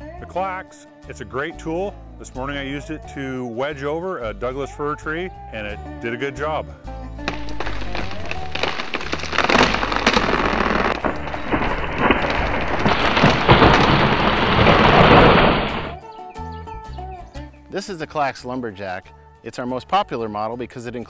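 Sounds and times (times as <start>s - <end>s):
branches snapping: 7.2s - 16.0s
tree falling with cracking wood: 7.2s - 16.0s.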